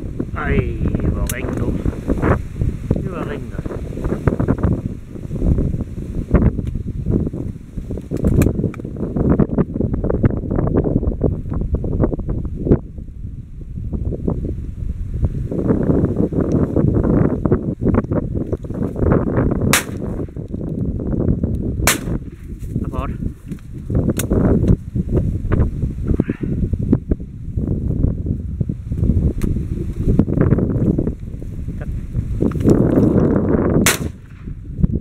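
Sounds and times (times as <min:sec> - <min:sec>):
wind buffeting microphone: 0:00.0 - 0:35.0
shotgun shots: 0:19.7 - 0:20.1, 0:21.8 - 0:22.2, 0:33.8 - 0:34.5.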